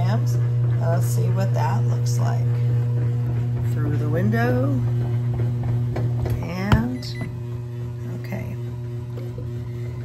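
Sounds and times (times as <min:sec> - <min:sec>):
bread machine motor hum: 0:00.0 - 0:10.0.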